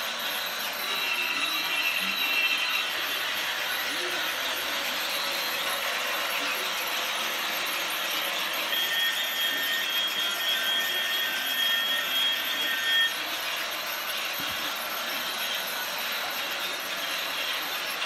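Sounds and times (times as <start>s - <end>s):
toy train whirring rattle: 0.0s - 18.0s.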